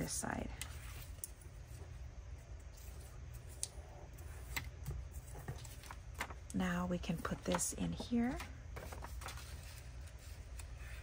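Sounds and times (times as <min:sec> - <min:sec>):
low steady hum: 0:00.0 - 0:11.0
paper ticks and rustles: 0:04.4 - 0:06.6, 0:07.2 - 0:11.0.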